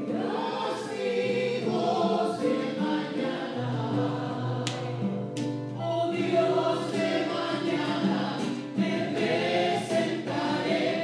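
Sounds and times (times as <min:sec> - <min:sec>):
church choir singing a hymn: 0:00.0 - 0:05.2, 0:05.8 - 0:11.0.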